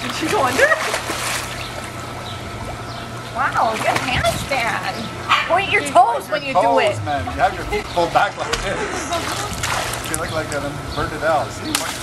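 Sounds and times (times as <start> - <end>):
pool water splashing: 0.0 - 4.9, 5.5 - 12.0
water sloshing and trickling: 0.0 - 4.9, 7.4 - 10.8, 11.6 - 12.0.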